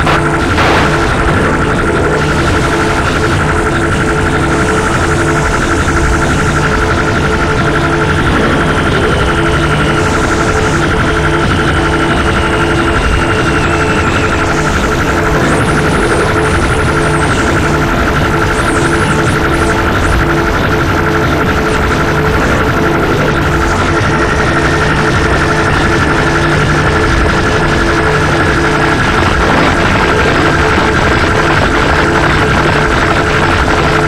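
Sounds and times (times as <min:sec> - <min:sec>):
harsh electronic noise music: 0:00.0 - 0:34.0.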